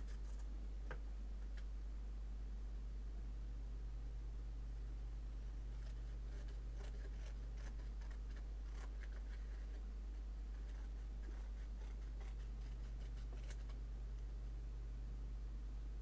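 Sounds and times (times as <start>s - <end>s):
low electrical hum: 0.0s - 16.0s
pencil scratching on cardboard: 5.8s - 9.8s, 10.5s - 13.8s.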